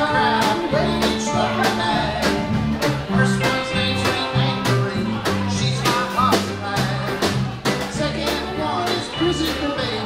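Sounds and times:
bouncing bass line: 0.0s - 10.0s
drum kit beat: 0.0s - 10.0s
electric guitars: 0.0s - 10.0s.

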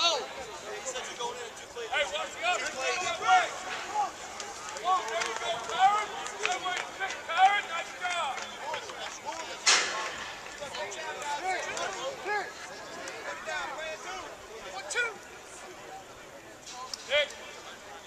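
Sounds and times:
players and coaches shouting: 0.0s - 9.6s, 10.5s - 15.5s.

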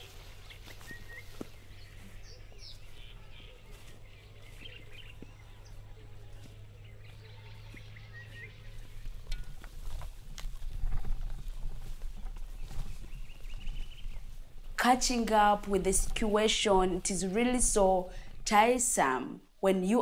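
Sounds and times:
birds chirping: 0.0s - 20.0s
rustling with thumps and clicks: 8.8s - 14.8s.

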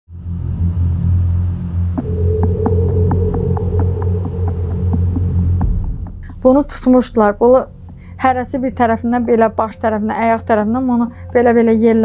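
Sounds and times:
deep throbbing low drone: 0.1s - 12.0s
high held tone: 2.0s - 6.6s.

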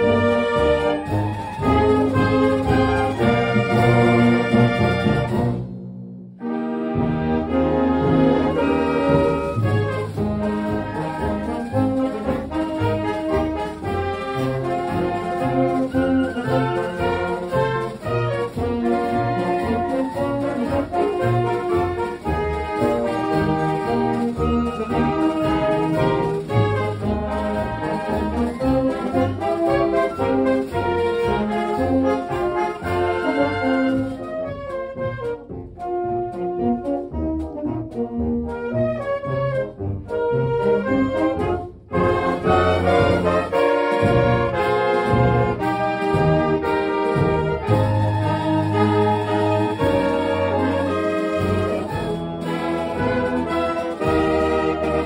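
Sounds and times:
wind band playing a march: 0.0s - 5.8s, 6.4s - 55.0s.

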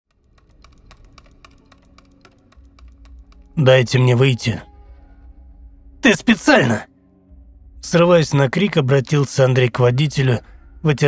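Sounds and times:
rapid irregular clicking: 0.1s - 3.6s.

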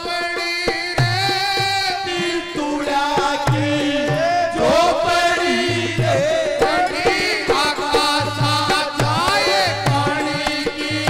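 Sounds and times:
men singing devotional folk song: 0.0s - 11.0s.

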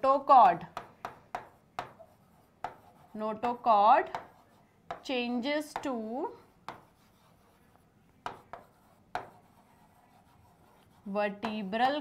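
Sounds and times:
stylus tapping and scratching screen: 0.0s - 12.0s.

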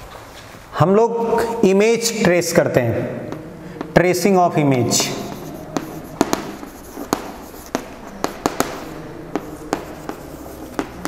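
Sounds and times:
chalk scratching: 3.3s - 11.0s
chalk tapping on chalkboard: 3.3s - 11.0s.

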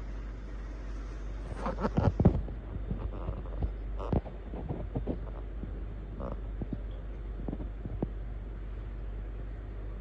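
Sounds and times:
low electrical hum: 0.0s - 10.0s
faint clicks and thumps: 1.5s - 8.4s.

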